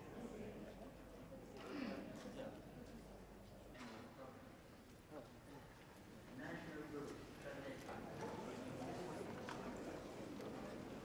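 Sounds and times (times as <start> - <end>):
faint chatter of people: 0.0 - 11.0.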